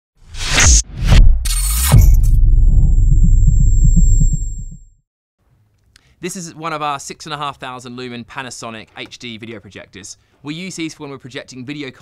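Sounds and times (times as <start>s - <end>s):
low pulsing rumble: 1.9s - 4.9s.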